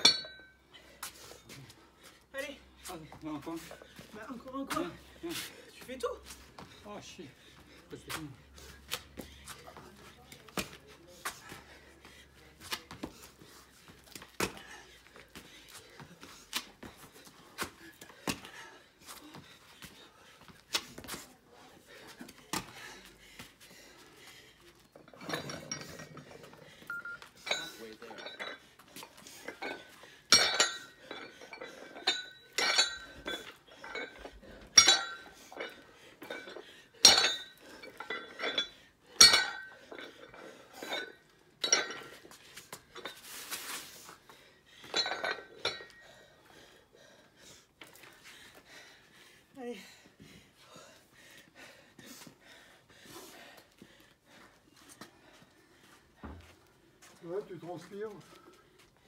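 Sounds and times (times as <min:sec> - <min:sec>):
dumbbell plates clinking: 0:00.0 - 0:00.7, 0:24.8 - 0:43.4, 0:44.8 - 0:46.4.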